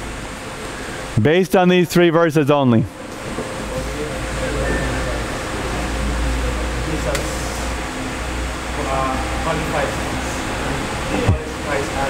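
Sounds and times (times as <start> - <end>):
room noise hiss and rumble: 0.0 - 12.0.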